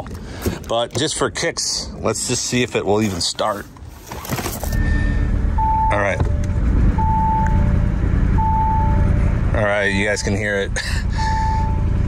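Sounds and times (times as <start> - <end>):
dashboard warning chime: 4.7 - 9.1, 9.8 - 10.6, 11.2 - 12.0.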